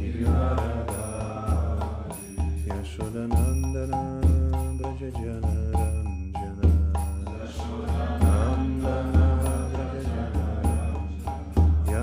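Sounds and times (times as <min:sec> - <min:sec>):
man chanting: 0:00.0 - 0:09.7
mridanga drum strokes: 0:00.0 - 0:12.0.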